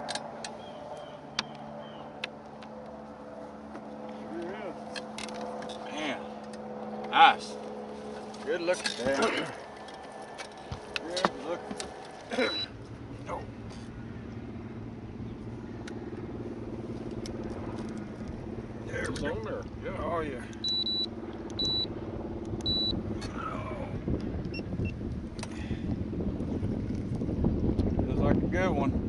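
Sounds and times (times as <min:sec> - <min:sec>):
low motor hum: 0:00.0 - 0:29.0
high-pitched electronic beeps: 0:20.6 - 0:21.9.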